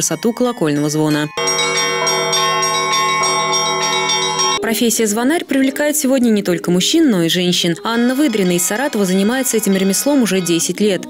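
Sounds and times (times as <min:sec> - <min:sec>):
church bells ringing: 0:00.0 - 0:04.7.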